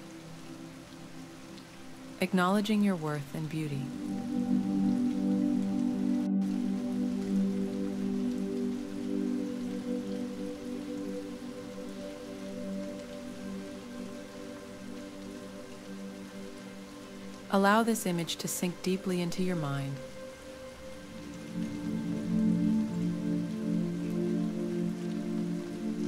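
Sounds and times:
soft rain: 0.0s - 26.0s
ambient pad chords: 3.6s - 17.6s, 19.0s - 26.0s.

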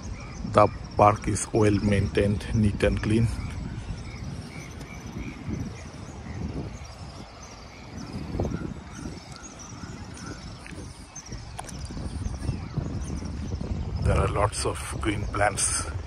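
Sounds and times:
wind rumble: 0.0s - 16.0s.

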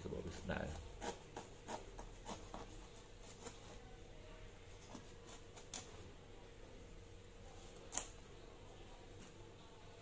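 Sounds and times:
knife scratching durian husk: 0.0s - 4.0s, 4.8s - 6.1s.

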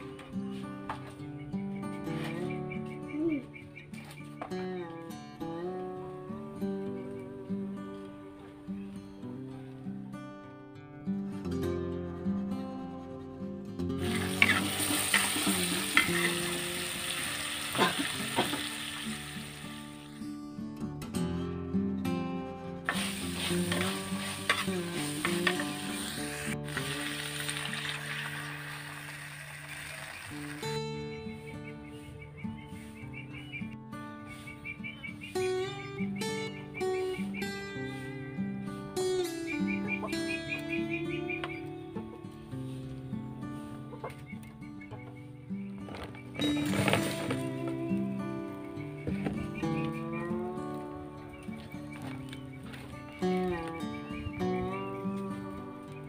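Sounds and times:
background music: 0.0s - 56.0s
food sizzling in hot oil: 14.0s - 20.1s, 22.9s - 30.8s
metal spatula stirring: 22.9s - 25.9s.

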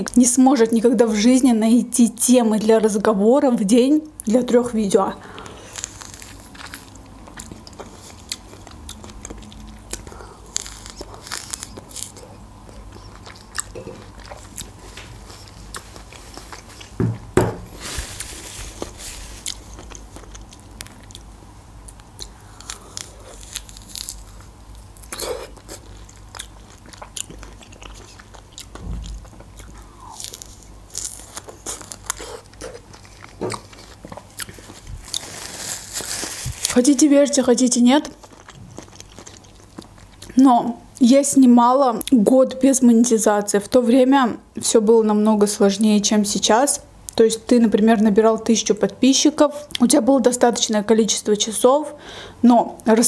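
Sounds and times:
chewing orange segments: 5.3s - 17.0s, 18.8s - 40.4s.

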